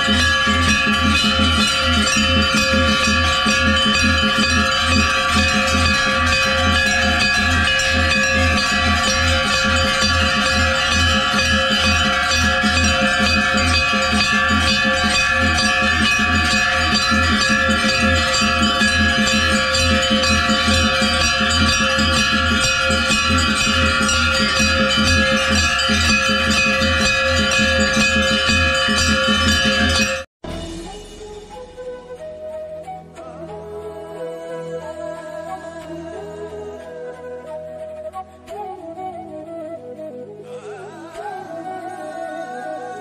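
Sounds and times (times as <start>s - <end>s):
brass bells clanging: 0.0s - 31.8s.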